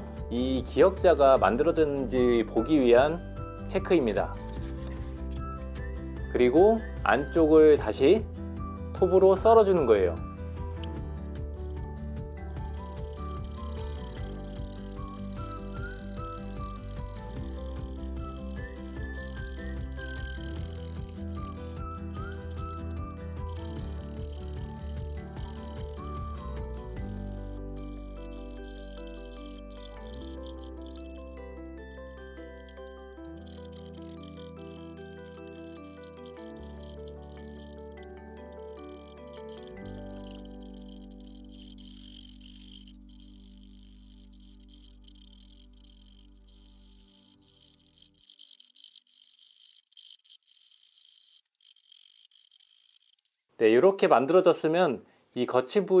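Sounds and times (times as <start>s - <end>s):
hand saw cutting wood: 11.6s - 53.3s.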